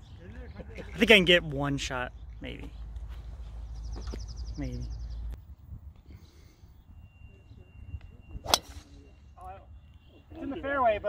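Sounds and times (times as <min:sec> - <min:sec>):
golf club striking ball: 0:08.4 - 0:09.1.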